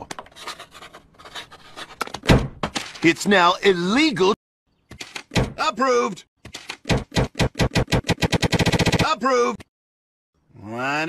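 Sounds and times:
pencil scratching on paper: 0.3 - 2.0.

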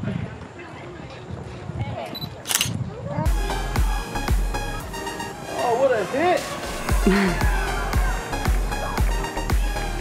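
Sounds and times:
camera shutter click: 2.2 - 2.8
music with pulsing bass beat: 3.3 - 5.2, 6.6 - 10.0.

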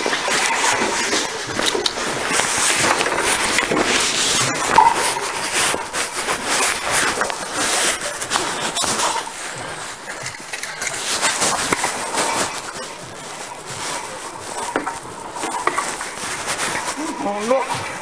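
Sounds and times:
microphone rubbing against clothing: 0.0 - 18.0.

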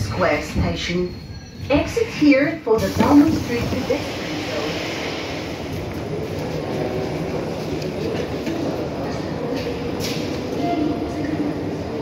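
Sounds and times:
metro train rumbling: 0.0 - 12.0.

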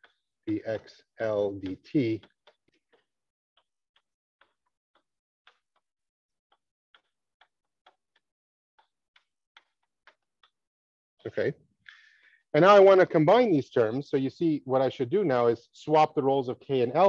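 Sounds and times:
chalk tapping on blackboard: 1.2 - 10.6.

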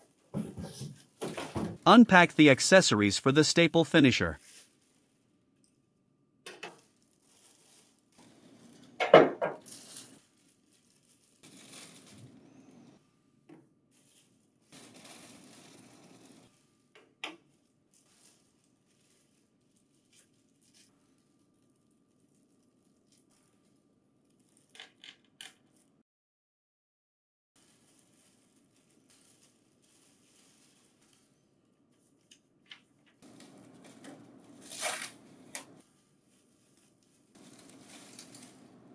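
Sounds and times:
plastic packaging rustling: 4.4 - 5.2, 6.8 - 8.9, 9.6 - 12.5, 14.0 - 16.4, 17.4 - 24.8, 27.6 - 32.3, 33.2 - 38.9.

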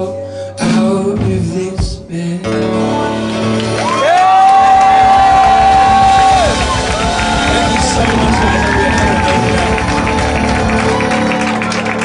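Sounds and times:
audience cheering and clapping: 3.5 - 12.0
person whooping: 3.8 - 11.0.

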